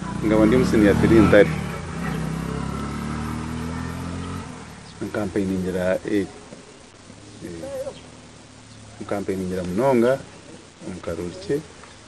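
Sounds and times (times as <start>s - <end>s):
vehicle engine running: 0.0s - 11.9s.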